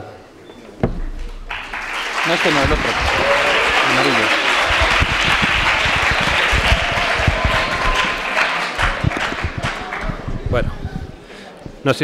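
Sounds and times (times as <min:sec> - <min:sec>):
audience applauding: 0:01.2 - 0:10.7.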